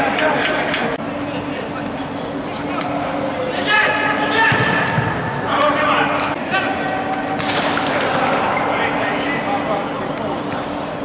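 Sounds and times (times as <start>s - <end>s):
steady hum: 0.0s - 11.0s
players shouting: 3.4s - 9.9s.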